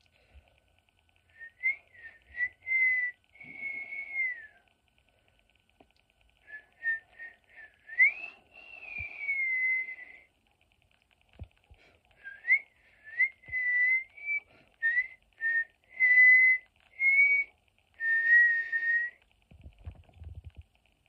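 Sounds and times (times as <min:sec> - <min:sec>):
person whistling a tune: 0:01.3 - 0:04.6, 0:06.5 - 0:10.3, 0:12.2 - 0:19.2.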